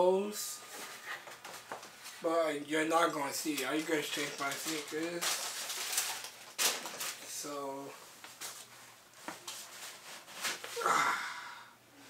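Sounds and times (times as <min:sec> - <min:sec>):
soft knocks and paper rustling: 0:00.7 - 0:02.2, 0:08.2 - 0:10.8.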